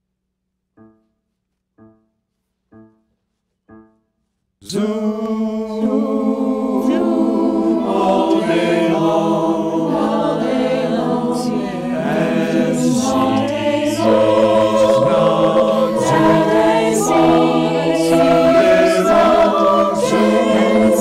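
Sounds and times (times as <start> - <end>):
group singing a cappella: 4.7 - 21.0.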